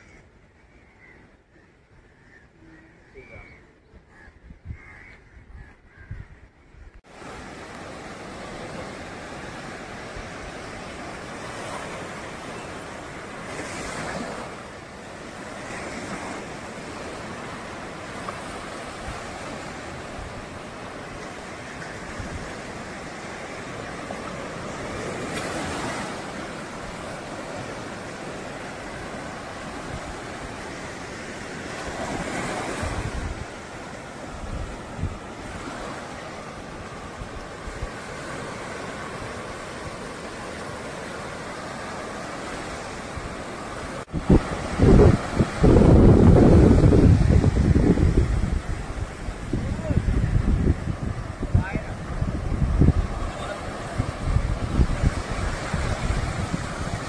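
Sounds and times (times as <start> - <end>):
wind buffeting microphone: 3.7 - 12.4, 31.8 - 57.0
surf washing up beach: 7.0 - 57.0.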